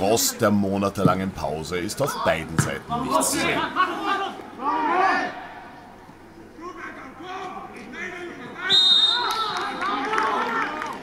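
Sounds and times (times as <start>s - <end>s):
players shouting: 2.0s - 5.8s
referee's whistle blast: 8.7s - 9.6s.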